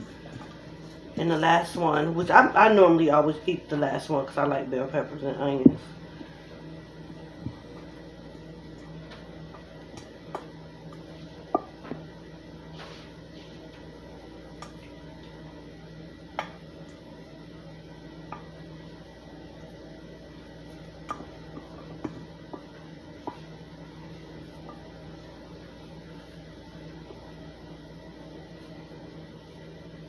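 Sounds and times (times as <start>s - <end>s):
low background hum: 0.0s - 30.0s.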